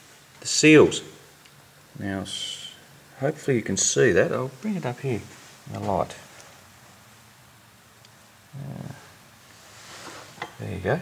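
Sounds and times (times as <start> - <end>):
faint room hiss: 0.0 - 11.0
man murmuring: 8.6 - 9.1.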